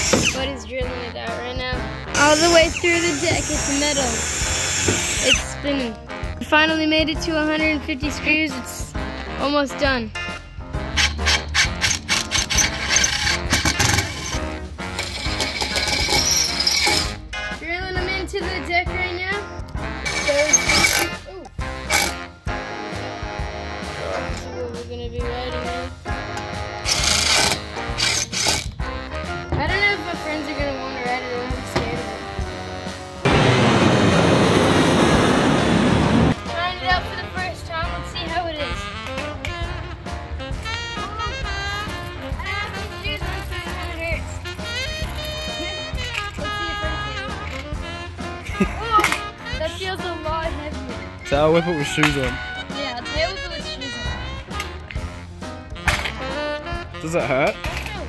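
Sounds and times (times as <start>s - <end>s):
cordless drill driving screws into metal: 0.0s - 0.4s, 2.4s - 5.5s, 15.0s - 17.2s, 26.8s - 28.7s
music with singing: 0.0s - 10.9s, 13.5s - 33.2s, 36.4s - 58.0s.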